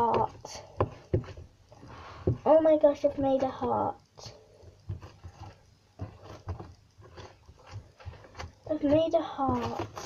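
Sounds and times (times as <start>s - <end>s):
slime squelching: 0.0s - 10.0s.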